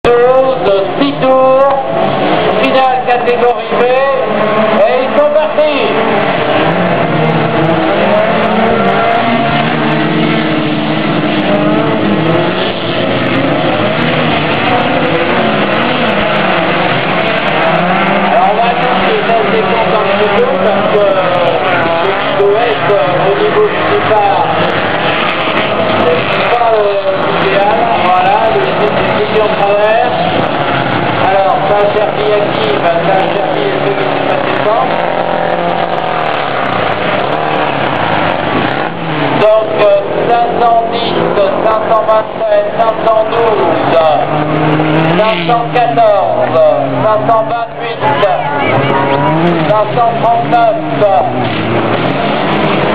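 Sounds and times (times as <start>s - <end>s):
race car engines revving: 0.0s - 52.9s.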